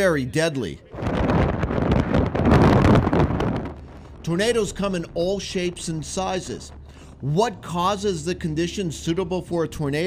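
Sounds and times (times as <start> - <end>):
strong wind buffeting microphone: 0.8 - 9.1.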